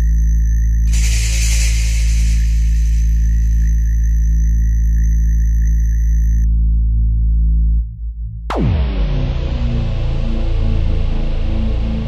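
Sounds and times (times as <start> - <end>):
background music with low drone: 0.0 - 12.0
swoosh hissing noise: 0.9 - 3.9.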